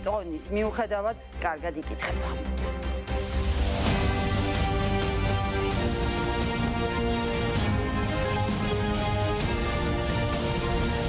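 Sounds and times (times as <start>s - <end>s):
synthesized news theme music: 0.0s - 11.0s.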